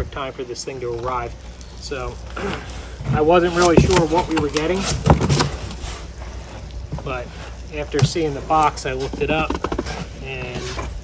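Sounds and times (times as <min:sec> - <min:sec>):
cardboard crackles: 0:01.0 - 0:11.0
cardboard rustle: 0:01.0 - 0:11.0.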